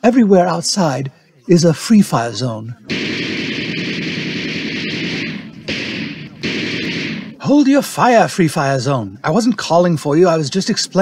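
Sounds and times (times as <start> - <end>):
automatic gunfire bursts: 2.9 - 7.5.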